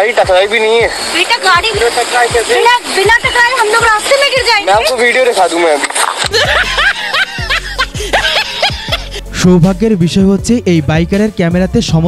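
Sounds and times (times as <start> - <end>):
cackling laughter: 6.2 - 9.2
background music with bass: 6.3 - 12.0.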